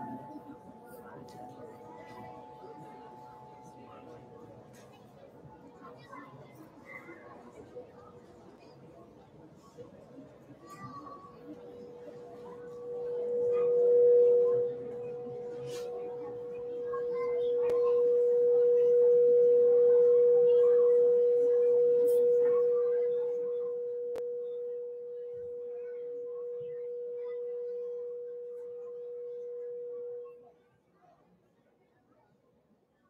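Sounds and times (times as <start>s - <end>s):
steady ringing tone: 0.0s - 6.0s, 11.6s - 30.5s.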